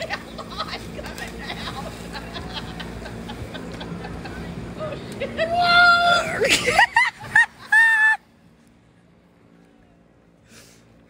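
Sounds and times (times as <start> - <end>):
woman shrieking laughter: 0.0 - 8.2.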